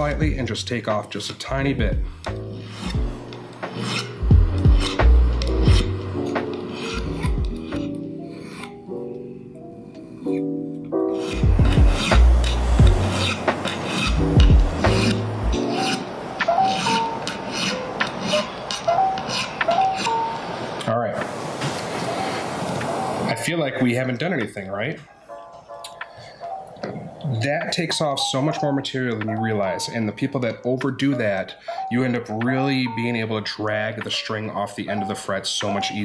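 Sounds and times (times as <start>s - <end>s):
background music with bass: 0.0s - 0.9s, 1.5s - 8.3s, 10.4s - 15.8s
file rasping on metal frets: 2.2s - 8.9s, 11.0s - 20.4s.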